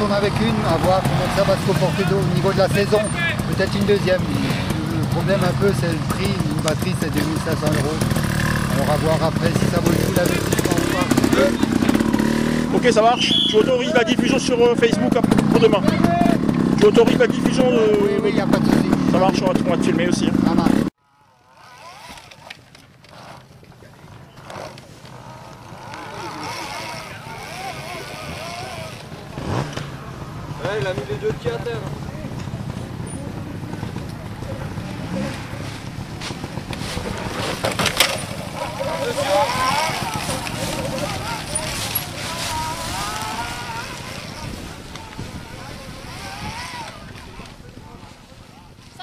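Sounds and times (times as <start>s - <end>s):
electric motorcycle motor whining: 24.4s - 29.5s, 37.2s - 47.5s
spectators' voices: 25.6s - 49.0s.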